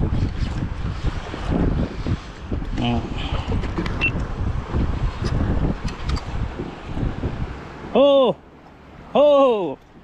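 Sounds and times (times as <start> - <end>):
wind buffeting microphone: 0.0 - 8.0.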